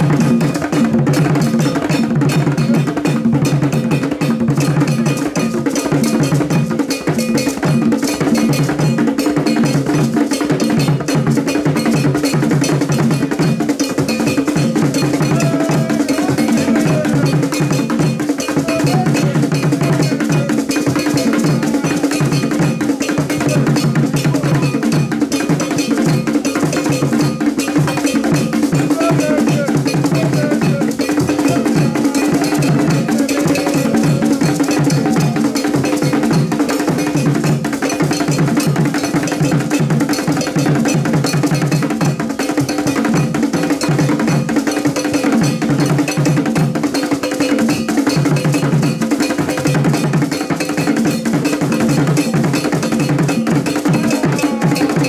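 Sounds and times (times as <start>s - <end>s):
hand drums fast rhythm: 0.0s - 55.0s
metal bell ringing pattern: 0.1s - 55.0s.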